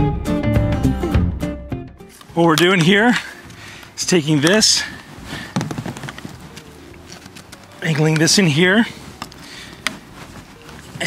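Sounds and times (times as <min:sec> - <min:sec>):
plastic pipe fittings clicking: 0:02.2 - 0:04.8, 0:05.4 - 0:08.4.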